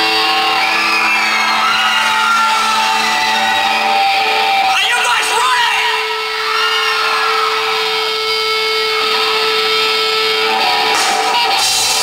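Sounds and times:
electric guitar feedback tone: 0:00.0 - 0:04.7, 0:05.7 - 0:12.0
crowd noise: 0:00.0 - 0:12.0.

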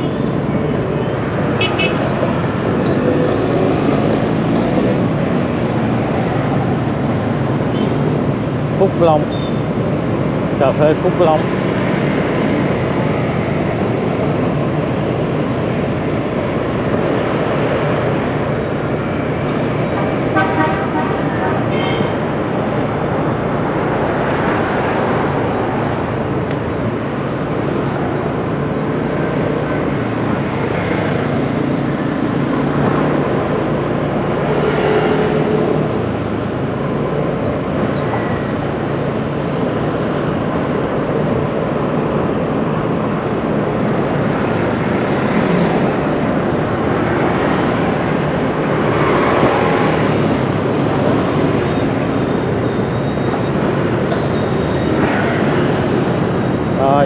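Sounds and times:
motorbike and car traffic: 0:00.0 - 0:57.0.

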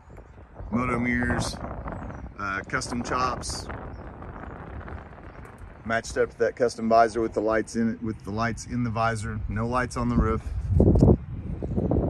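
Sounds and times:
man talking: 0:00.7 - 0:01.6, 0:02.4 - 0:03.7, 0:05.8 - 0:10.5.

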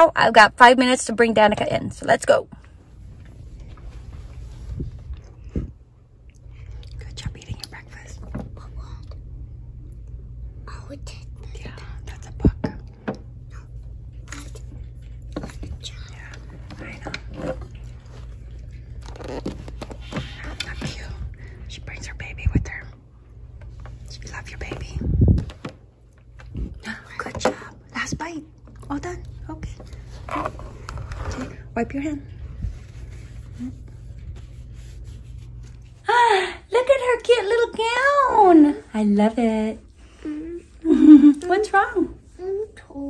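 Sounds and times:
low hum: 0:00.0 - 0:43.0.

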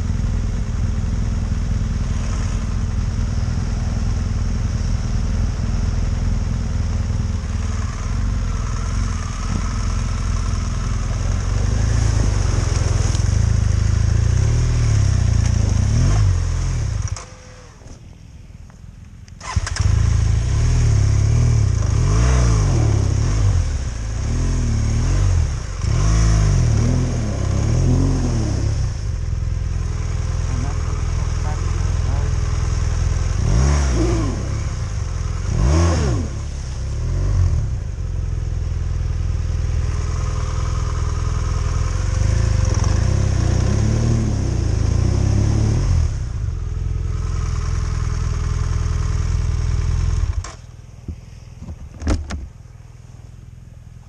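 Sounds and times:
motorcycle engine revving: 0:00.0 - 0:18.3, 0:19.2 - 0:51.0
motorcycle engine starting: 0:00.0 - 0:54.0.

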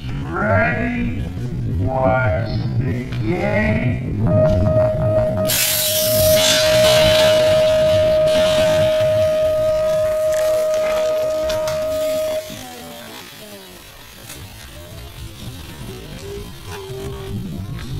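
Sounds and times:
long electronic tone: 0:04.2 - 0:13.2.

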